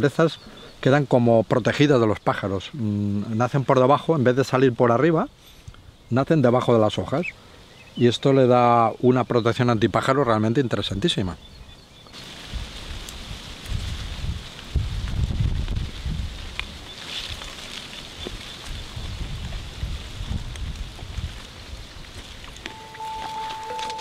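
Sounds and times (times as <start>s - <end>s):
leaves rustling: 12.1s - 24.0s
wind buffeting microphone: 12.4s - 17.0s, 18.1s - 22.5s
mallet-like music notes: 22.7s - 24.0s.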